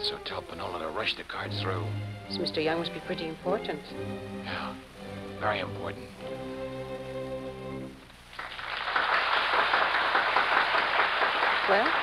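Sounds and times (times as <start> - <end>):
audience applauding: 8.3 - 12.0.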